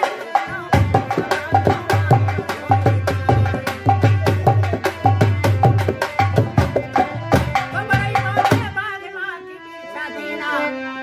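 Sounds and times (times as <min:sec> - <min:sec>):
dholak drum rhythm: 0:00.0 - 0:09.2
harmonium: 0:00.0 - 0:11.0.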